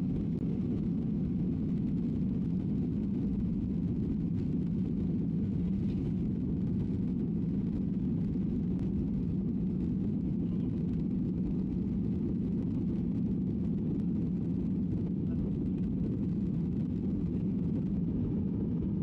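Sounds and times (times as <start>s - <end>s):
jet engines roaring in cabin: 0.0s - 19.0s.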